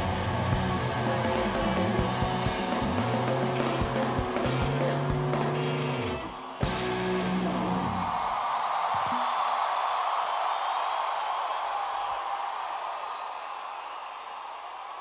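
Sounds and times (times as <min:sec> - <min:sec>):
rock band final crash: 0:00.0 - 0:08.1
crowd cheering and applauding: 0:00.0 - 0:15.0.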